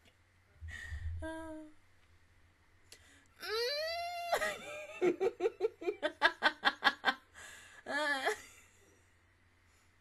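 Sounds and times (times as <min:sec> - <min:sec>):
woman humming: 0:00.7 - 0:01.8, 0:03.4 - 0:04.4.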